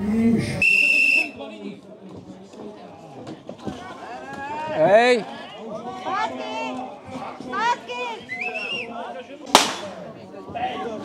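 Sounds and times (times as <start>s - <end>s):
short whistle blast: 0.6s - 1.4s.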